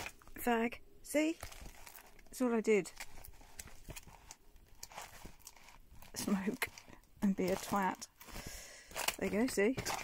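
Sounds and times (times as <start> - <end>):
plastic photo sleeves rustling: 1.2 - 10.0.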